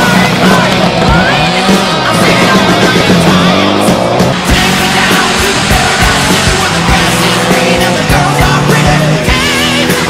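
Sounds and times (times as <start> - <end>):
car sliding on gravel: 0.0 - 9.1
car engine revving: 0.0 - 10.0
rock music: 0.0 - 10.0.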